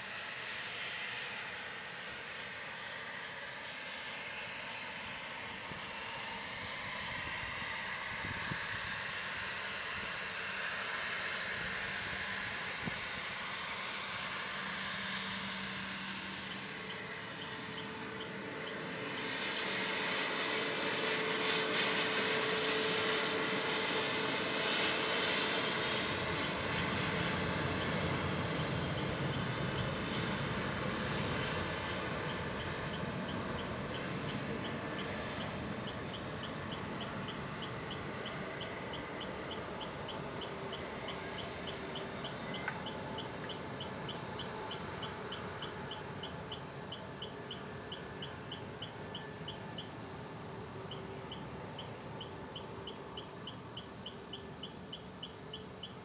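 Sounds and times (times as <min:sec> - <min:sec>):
jet engines whining: 0:00.0 - 0:56.0.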